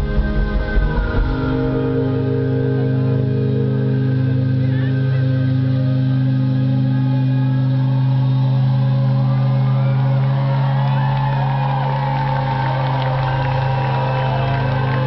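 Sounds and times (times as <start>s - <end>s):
crowd cheering and whooping: 0.0s - 4.5s, 5.2s - 15.0s
live band holding low chord: 0.0s - 15.0s.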